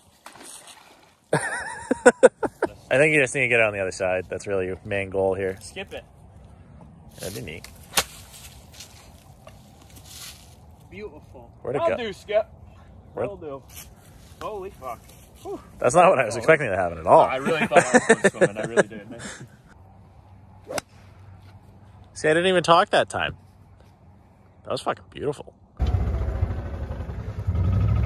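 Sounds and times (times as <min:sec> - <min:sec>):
golf club swish: 0:20.6 - 0:21.1.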